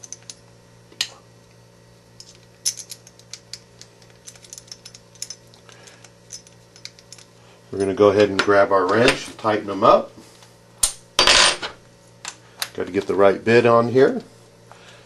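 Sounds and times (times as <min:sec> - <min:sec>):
steady low hum: 0:00.0 - 0:15.0
small screws clicking and tapping: 0:02.2 - 0:07.3.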